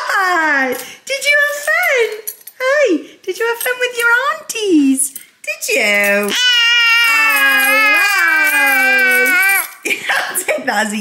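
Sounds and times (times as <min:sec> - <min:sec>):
baby vocalizing aaah: 0:06.3 - 0:09.8.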